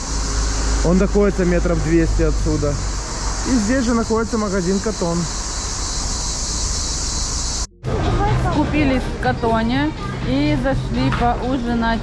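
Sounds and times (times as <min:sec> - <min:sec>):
cicadas hissing chorus: 0:00.0 - 0:07.7.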